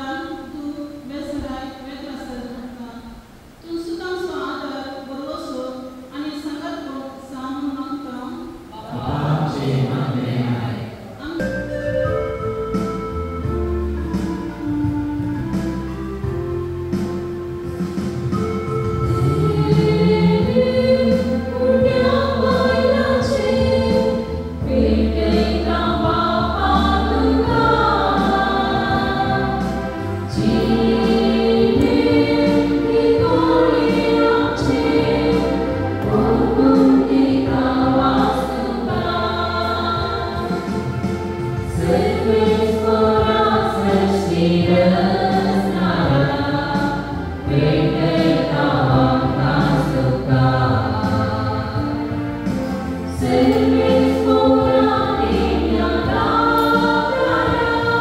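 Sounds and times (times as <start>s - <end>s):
choir singing a hymn: 8.6s - 12.0s, 17.7s - 58.0s
instrumental accompaniment: 11.3s - 58.0s.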